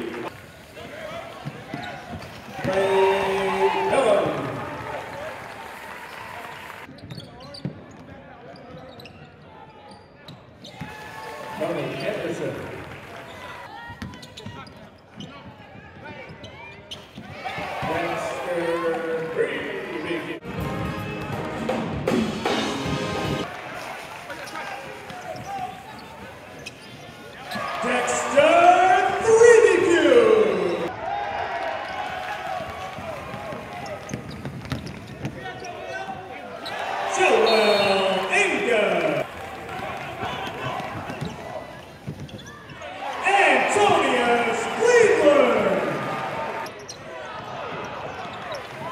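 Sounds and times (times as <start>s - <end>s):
crowd and players shouting: 0.0s - 6.9s, 10.7s - 14.7s, 15.4s - 21.6s, 27.2s - 48.9s
basketball dribbling: 32.8s - 35.7s, 39.8s - 42.5s.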